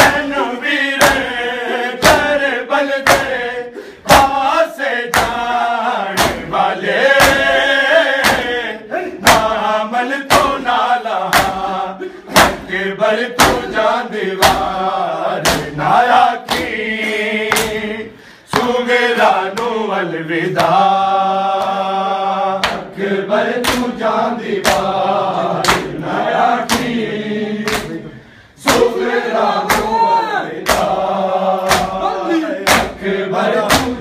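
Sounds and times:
men chanting together: 0.0 - 34.0
hands slapping chests: 1.0 - 12.8, 13.4 - 17.9, 18.5 - 21.9, 22.5 - 25.0, 25.6 - 34.0.

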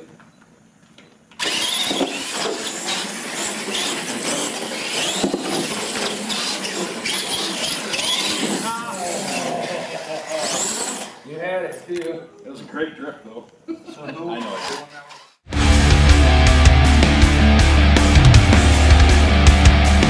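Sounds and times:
tyre and drivetrain noise: 1.4 - 11.2
toy truck motors whining: 1.4 - 11.3, 14.4 - 15.4.

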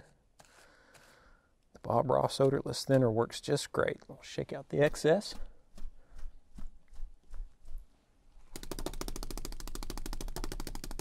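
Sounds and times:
brush rattling against stand: 4.7 - 7.9.

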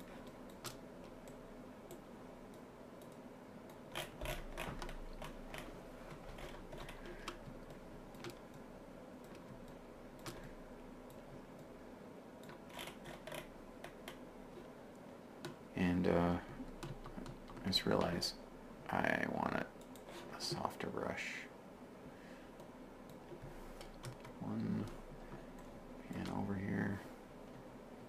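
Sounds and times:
keyboard and mouse clicks: 0.0 - 11.7, 12.4 - 14.7, 16.7 - 18.2, 22.6 - 26.5
faint steady hum: 0.0 - 28.0.

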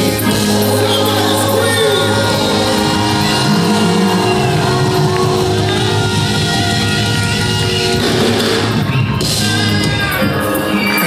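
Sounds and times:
live gospel band playing: 0.0 - 11.0.

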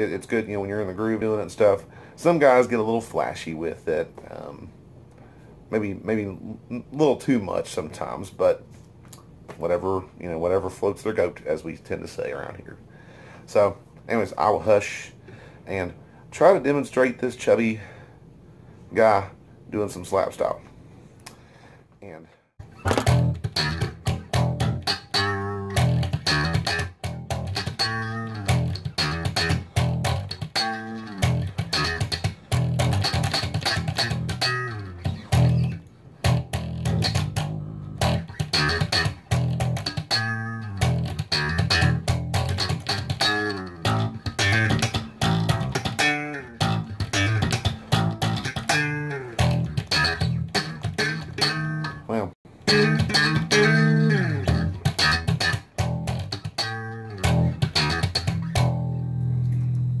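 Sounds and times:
slap bass guitar groove: 22.6 - 60.0.

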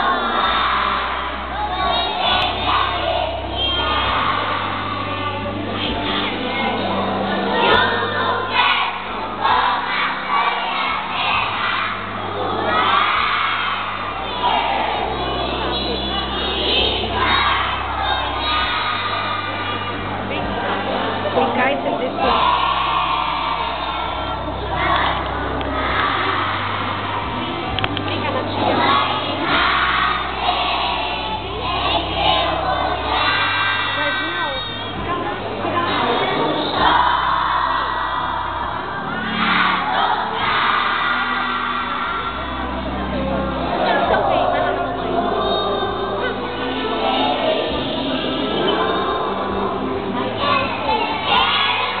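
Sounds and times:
children shouting and cheering: 0.0 - 52.0
music: 0.0 - 52.0.

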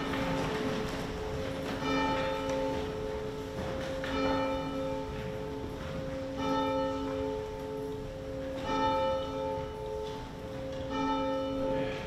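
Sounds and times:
church bell tolling: 0.0 - 12.0.

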